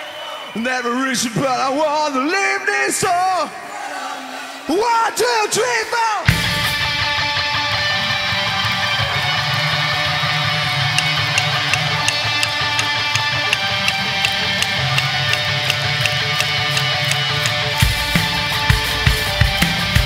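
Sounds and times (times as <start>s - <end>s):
live rock band playing: 6.3s - 20.0s
sharp ticks: 11.0s - 17.8s.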